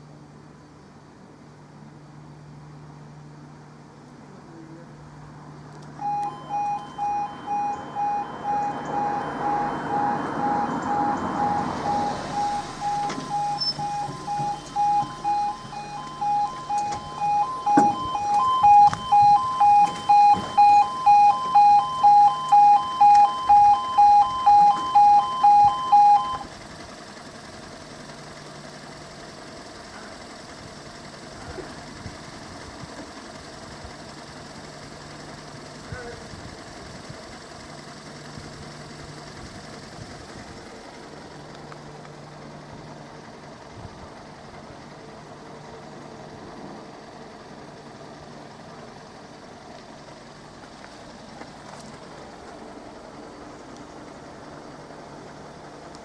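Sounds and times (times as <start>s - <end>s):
level crossing alarm two-tone beep: 6.0s - 26.5s.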